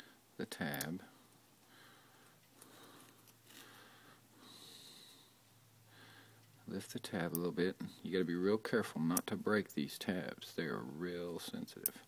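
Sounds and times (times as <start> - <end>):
low steady hum: 0.0 - 12.0
faint breaths: 1.0 - 6.8.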